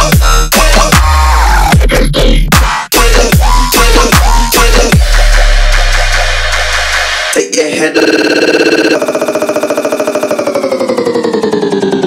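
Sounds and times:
stuttering synth bass: 0.0s - 7.4s, 8.0s - 12.0s.

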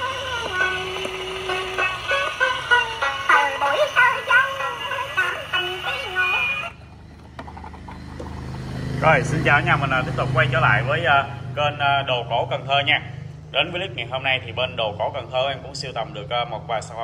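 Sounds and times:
song from gramophone record: 0.0s - 6.8s.

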